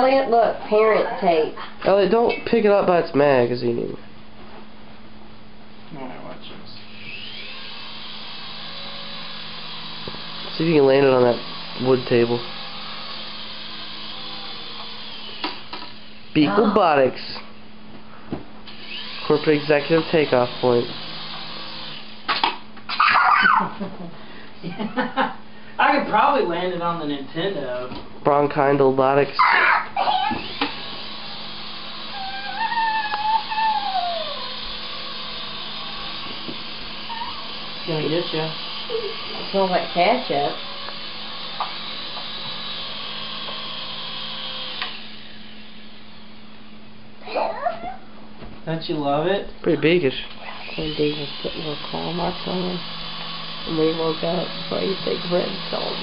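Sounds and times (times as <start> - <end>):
toy helicopter rotor motor humming: 6.9 - 17.0, 18.7 - 22.2, 29.4 - 46.2, 50.4 - 56.0
laughter: 23.0 - 25.4.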